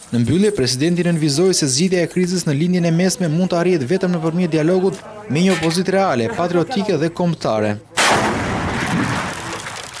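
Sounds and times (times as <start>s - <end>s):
launcher tube blast: 8.0s - 9.8s.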